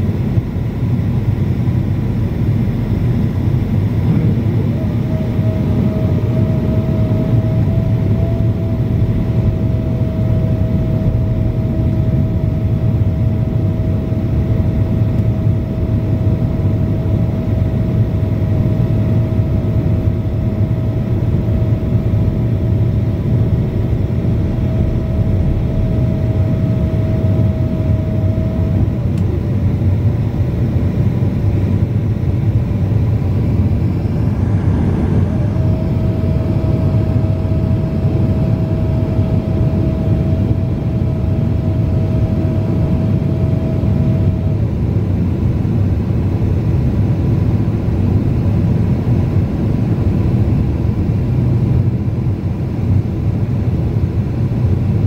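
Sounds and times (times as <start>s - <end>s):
low rumble of jet engines: 0.0s - 55.0s.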